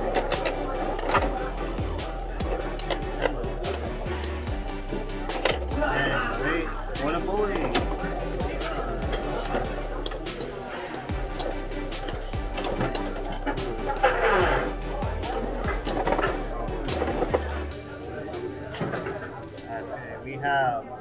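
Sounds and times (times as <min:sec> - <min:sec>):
spinning tops clashing in plastic arena: 0:00.0 - 0:05.8, 0:07.0 - 0:17.6
background music: 0:00.0 - 0:21.0
voices: 0:00.0 - 0:21.0.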